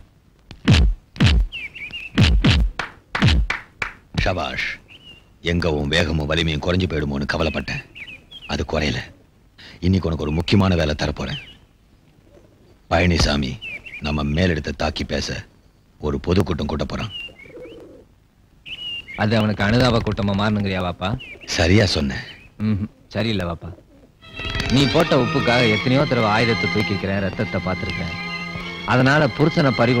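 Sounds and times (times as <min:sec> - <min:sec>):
high whistled bird chirps: 0:01.4 - 0:02.3, 0:18.7 - 0:19.2.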